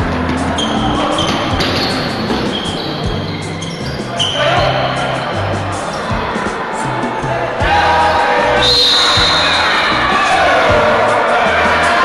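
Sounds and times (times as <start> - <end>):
voices in reverberant hall: 0.0 - 12.0
basketball bouncing on court: 0.1 - 4.8
shoe squeal: 0.3 - 6.7, 8.5 - 10.4.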